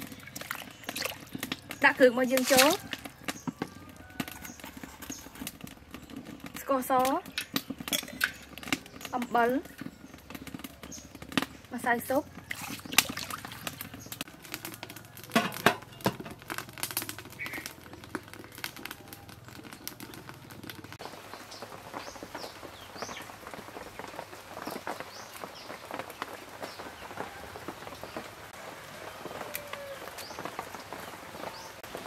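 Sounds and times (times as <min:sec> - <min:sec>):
small birds chirping: 0:00.0 - 0:14.3, 0:17.2 - 0:28.4, 0:29.1 - 0:31.9.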